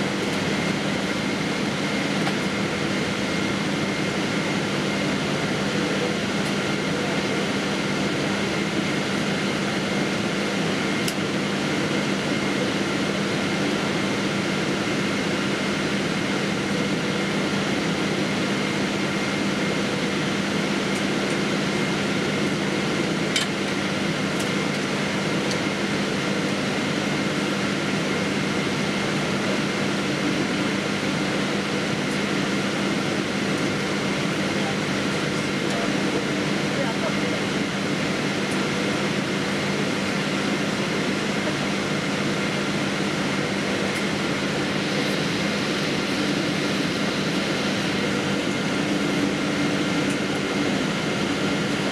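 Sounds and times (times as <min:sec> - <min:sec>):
airliner cabin noise: 0:00.0 - 0:51.9.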